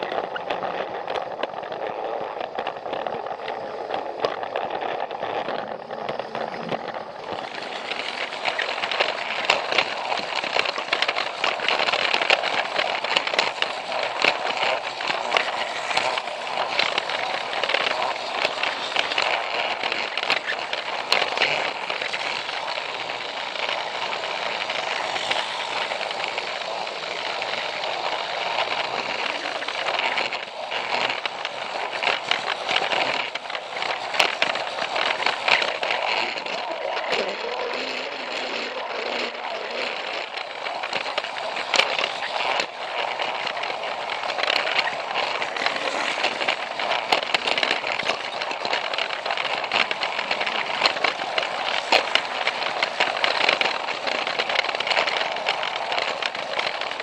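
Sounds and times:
toy train motor whirr: 0:00.0 - 0:57.0
wheels clicking over track joints: 0:00.0 - 0:57.0.

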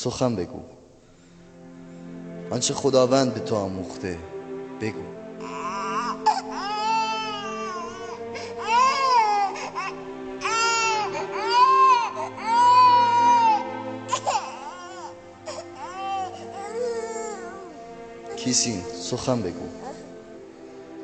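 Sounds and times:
background music: 0:00.0 - 0:21.0
baby crying: 0:05.4 - 0:18.4, 0:19.8 - 0:20.1.

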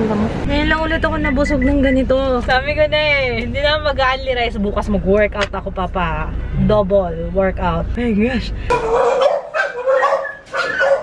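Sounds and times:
dogs barking loudly: 0:08.7 - 0:11.0.

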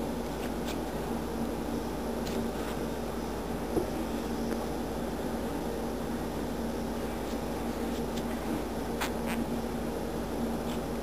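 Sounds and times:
low electrical hum and hiss: 0:00.0 - 0:11.0.

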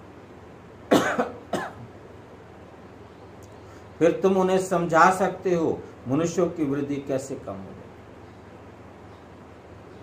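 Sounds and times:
man coughing: 0:00.9 - 0:01.9.

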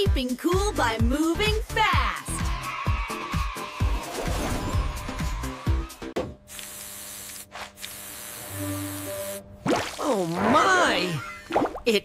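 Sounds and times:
cartoon background music: 0:00.0 - 0:06.2.

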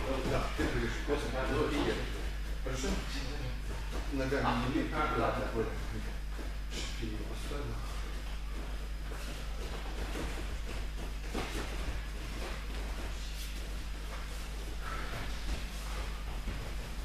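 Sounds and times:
soft rustles and knocks on mats: 0:00.0 - 0:04.5, 0:05.8 - 0:17.0
room noise hum and hiss: 0:00.0 - 0:17.0.

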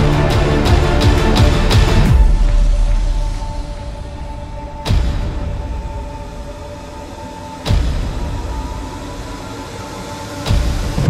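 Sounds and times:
deep cinematic hits: 0:00.0 - 0:09.2
low rumbling drone: 0:00.0 - 0:11.0.

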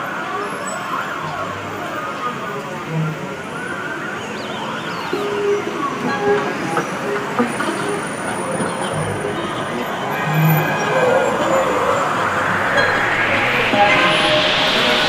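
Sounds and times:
faint voices: 0:00.0 - 0:15.0
traffic noise: 0:00.0 - 0:15.0
noise rising in pitch: 0:09.0 - 0:15.0
siren wailing: 0:09.0 - 0:15.0.

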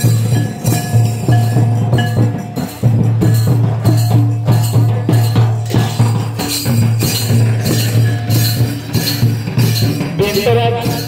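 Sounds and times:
barrel drums beaten: 0:00.0 - 0:11.0
hand cymbals clinking: 0:00.0 - 0:11.0.

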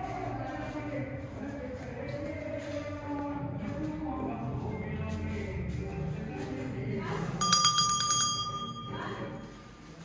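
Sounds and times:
small metal bell ringing: 0:07.4 - 0:09.6.

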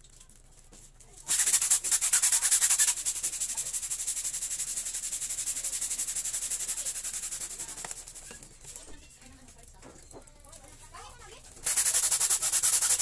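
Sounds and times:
balloon pump hissing air: 0:01.2 - 0:08.4, 0:11.6 - 0:13.0.

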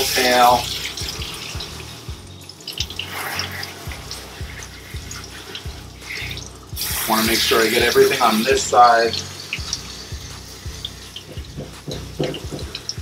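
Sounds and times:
background music with low beat: 0:00.0 - 0:13.0
hose water spraying and splashing: 0:00.0 - 0:13.0.

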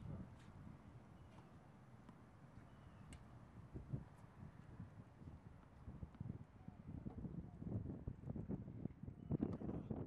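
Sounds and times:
low wind rumble on microphone: 0:03.6 - 0:10.0.

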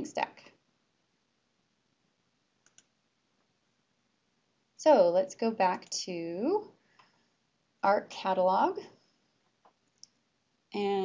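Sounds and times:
faint computer mouse clicks: 0:02.6 - 0:02.9.

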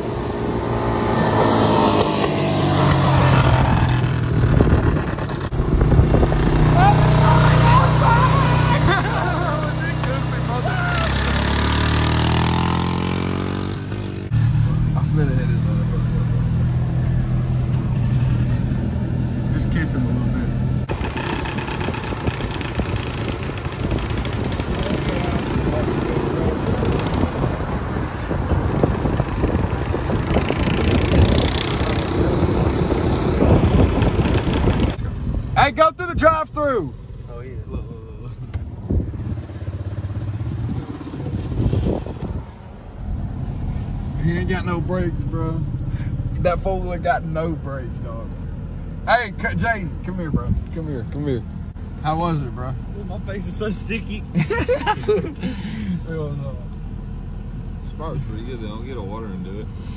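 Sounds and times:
vehicle engine droning: 0:00.0 - 0:59.9.

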